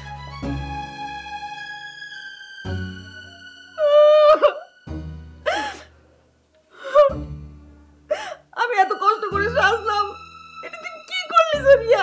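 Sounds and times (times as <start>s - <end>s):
woman sobbing gasp: 3.8s - 4.7s, 5.4s - 6.0s, 6.7s - 7.2s, 8.1s - 8.5s.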